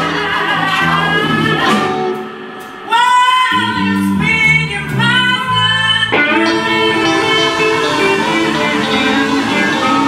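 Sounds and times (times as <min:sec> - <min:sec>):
bass guitar: 0:00.0 - 0:10.0
electric guitar: 0:00.0 - 0:10.0.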